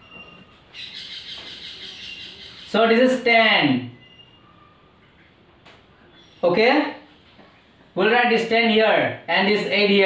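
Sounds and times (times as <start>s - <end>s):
marker squeaking on whiteboard: 0.0s - 2.8s.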